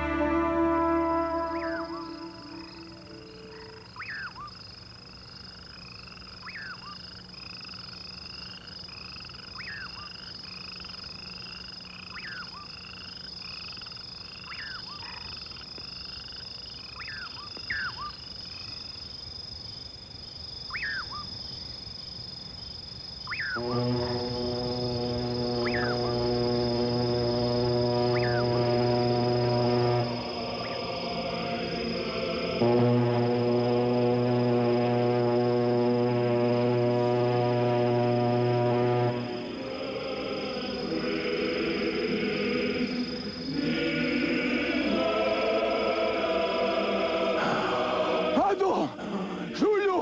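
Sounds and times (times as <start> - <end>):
frog downward-sweeping call: 0.0 - 4.6, 5.8 - 18.2, 20.7 - 21.3, 23.2 - 48.5
chorus of frog chirps: 1.4 - 32.6, 39.2 - 49.6.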